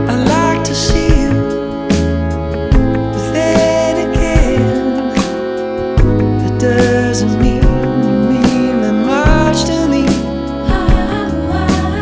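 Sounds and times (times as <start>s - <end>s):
instrumental band music: 0.0s - 12.0s.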